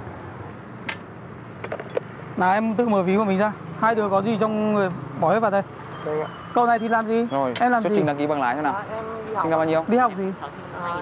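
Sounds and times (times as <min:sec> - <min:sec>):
low street hum: 0:00.0 - 0:11.0.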